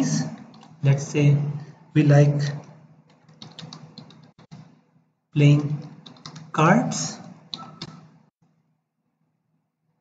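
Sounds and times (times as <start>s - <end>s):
typing on computer keyboard: 0.4s - 0.8s, 2.6s - 4.8s, 5.6s - 6.5s, 7.5s - 8.2s.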